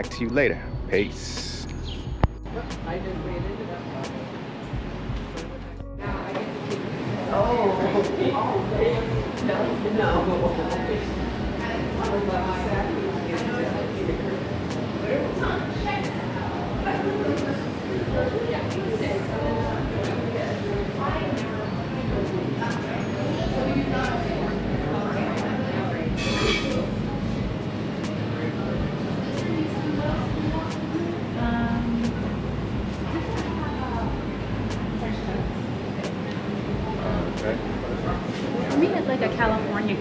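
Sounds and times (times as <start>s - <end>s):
steady low rumble: 0.0s - 3.7s, 4.7s - 6.2s, 10.0s - 13.0s, 26.0s - 27.7s, 31.4s - 38.3s
people talking indistinctly: 0.0s - 40.0s.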